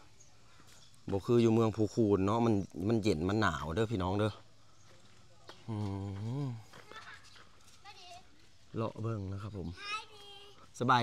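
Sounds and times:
faint footsteps on dirt: 0:00.4 - 0:01.6, 0:03.5 - 0:09.4.

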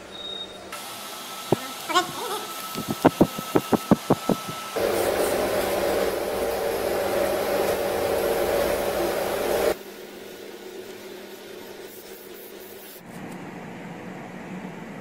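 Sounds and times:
electric fan whirring: 0:00.8 - 0:09.8.

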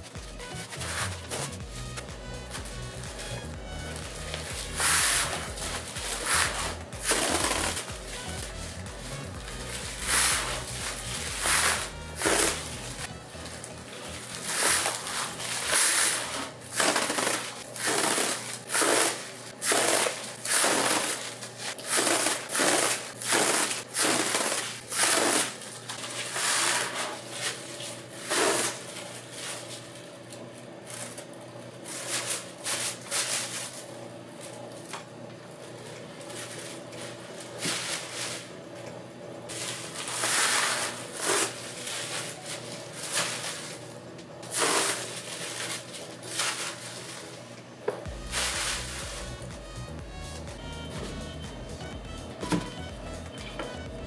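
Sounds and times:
paper crinkling and rustling: 0:00.4 - 0:38.6, 0:39.5 - 0:49.4.

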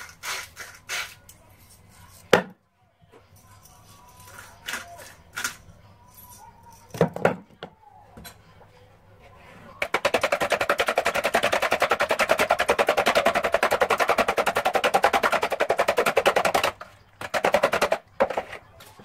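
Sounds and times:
spoon beating eggs in plastic bowl: 0:03.3 - 0:05.6, 0:09.7 - 0:19.0.

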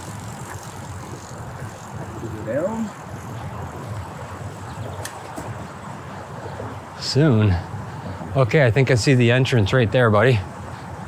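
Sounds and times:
bicycle tyre noise: 0:00.0 - 0:11.0
wind on microphone: 0:00.0 - 0:11.0.

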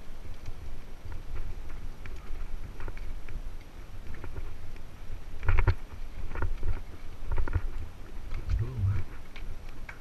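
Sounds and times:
wind rumble on camera: 0:00.0 - 0:10.0.

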